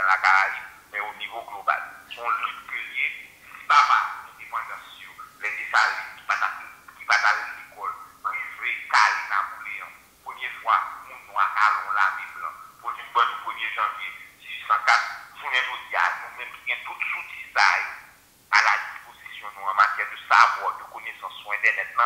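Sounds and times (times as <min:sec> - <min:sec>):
person speaking: 0:00.0 - 0:22.0.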